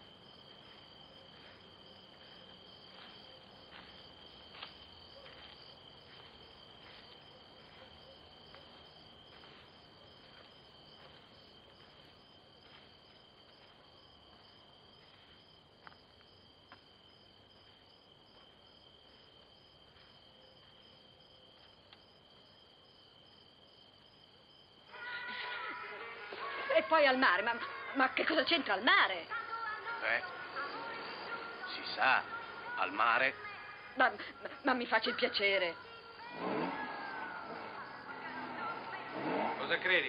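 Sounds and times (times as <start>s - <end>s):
faint crickets chirping: 0.0s - 40.0s
voices: 24.9s - 40.0s.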